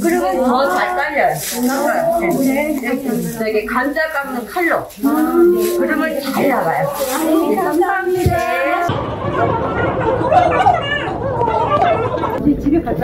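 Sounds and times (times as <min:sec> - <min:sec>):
women talking: 0:00.0 - 0:08.9, 0:12.3 - 0:13.0
crowd hubbub: 0:00.0 - 0:13.0.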